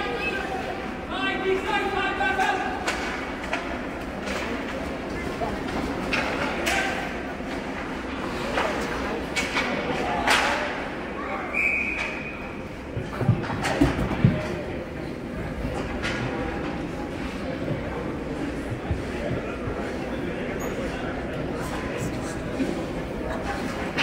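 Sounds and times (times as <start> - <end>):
voices calling in arena: 0.0 - 3.8
hockey sticks and puck clacking: 2.3 - 10.8.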